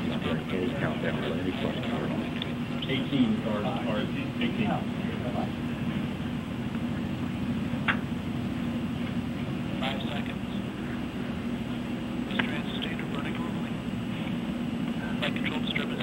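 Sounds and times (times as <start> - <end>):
low rumble and hum: 0.0 - 16.0.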